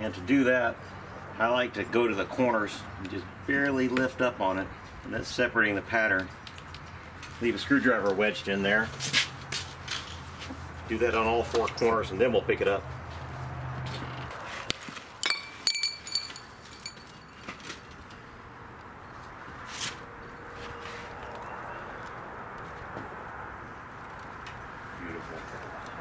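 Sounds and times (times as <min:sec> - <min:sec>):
metallic clinks: 0:15.2 - 0:17.7.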